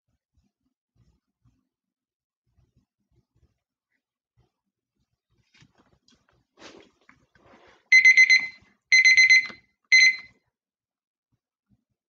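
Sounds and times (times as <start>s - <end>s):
timer beeping: 7.9s - 10.3s.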